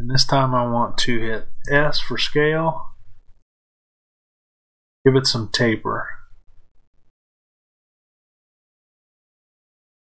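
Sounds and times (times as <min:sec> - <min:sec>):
man speaking: 0:00.0 - 0:03.0, 0:05.1 - 0:06.3
faint low noise: 0:00.0 - 0:03.4, 0:05.1 - 0:07.1.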